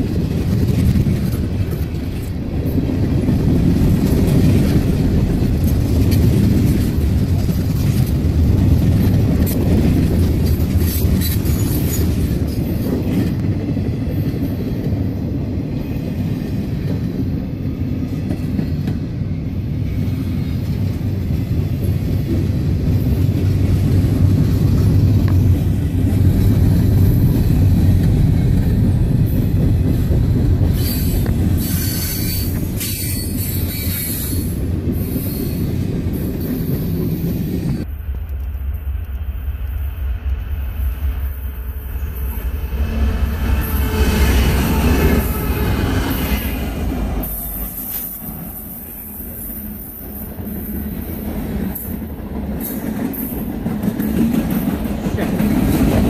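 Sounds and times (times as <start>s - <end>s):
freight train wheels rumbling: 0.0s - 56.0s
wheel squeal: 30.7s - 35.7s.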